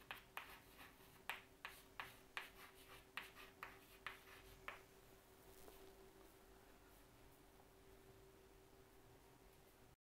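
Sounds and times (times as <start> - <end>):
chalk writing on chalkboard: 0.0 - 4.8
faint steady hum: 0.0 - 10.0.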